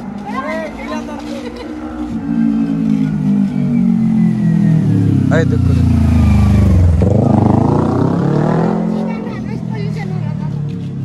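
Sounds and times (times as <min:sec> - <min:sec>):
motorbike engine passing: 0:00.0 - 0:11.0.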